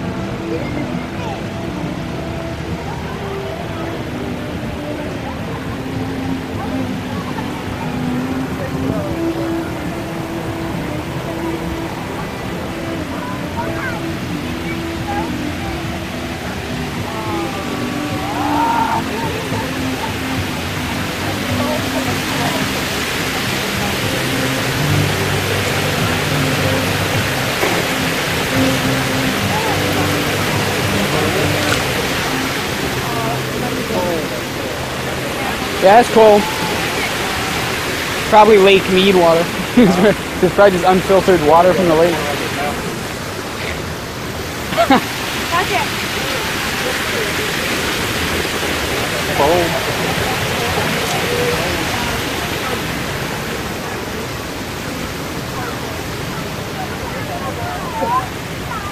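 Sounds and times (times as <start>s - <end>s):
background music with held notes: 0.0s - 58.9s
fountain water rushing hiss: 0.0s - 58.9s
passing voices: 0.0s - 58.9s.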